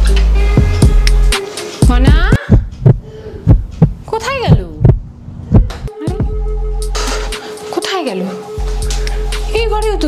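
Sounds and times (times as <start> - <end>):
heavy heartbeat thuds: 1.8 - 6.6
rising and falling tone: 4.8 - 6.8.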